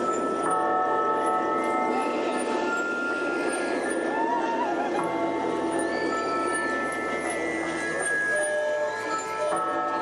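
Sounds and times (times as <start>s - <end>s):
eerie ambient soundtrack: 0.0s - 10.0s.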